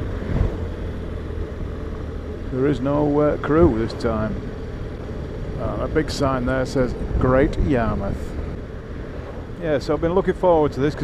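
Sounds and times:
motorcycle engine cruising: 0:00.0 - 0:11.0
road and wind noise: 0:00.0 - 0:11.0.

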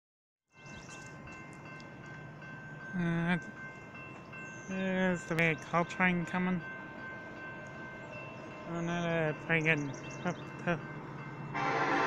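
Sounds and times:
railroad crossing bell ringing: 0:00.5 - 0:12.0.

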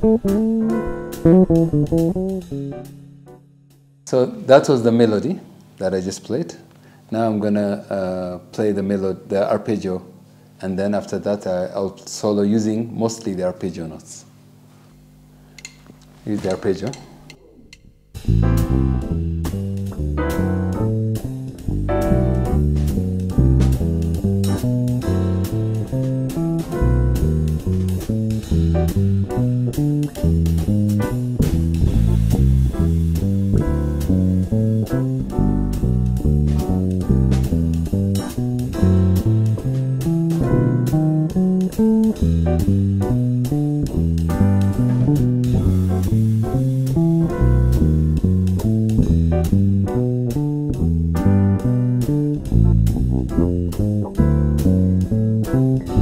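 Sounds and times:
electric bass guitar plucked: 0:00.0 - 0:04.1, 0:17.4 - 0:56.0.

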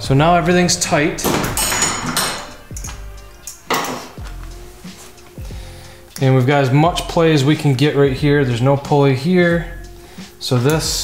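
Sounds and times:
steel hand tools clinking: 0:01.1 - 0:04.3.

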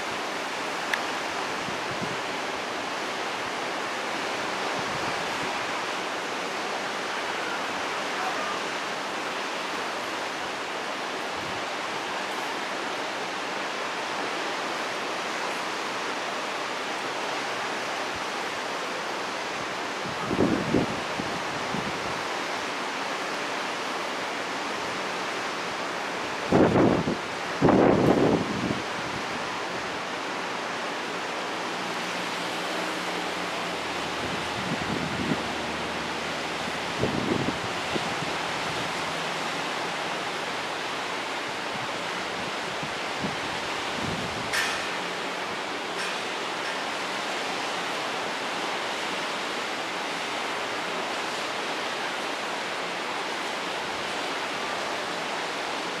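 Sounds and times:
ocean surf: 0:00.0 - 0:56.0
wind rumbling on microphone: 0:01.4 - 0:02.4, 0:19.7 - 0:22.3, 0:26.3 - 0:31.2, 0:31.8 - 0:45.2.

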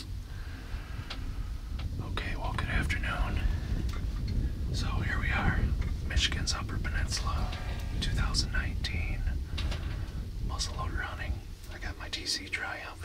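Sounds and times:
low steady rumble: 0:00.0 - 0:13.0
man whispering: 0:01.9 - 0:03.8, 0:04.7 - 0:09.4, 0:10.4 - 0:13.0.

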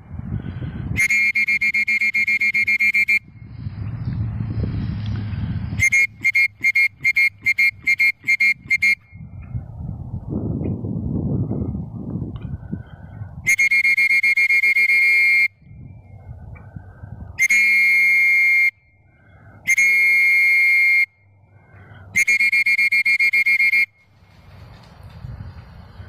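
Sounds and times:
wind noise on microphone: 0:00.0 - 0:26.0
whistle blasts with trill: 0:00.9 - 0:03.4, 0:05.8 - 0:09.2, 0:13.4 - 0:15.7, 0:17.4 - 0:18.8, 0:19.7 - 0:21.2, 0:22.1 - 0:24.1.

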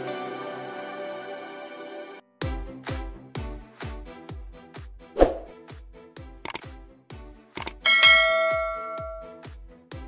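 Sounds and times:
background music with steady beat: 0:01.6 - 0:10.0
mouse click sound effects: 0:06.5 - 0:06.7, 0:07.6 - 0:07.8
notification bell ding: 0:07.8 - 0:09.4.

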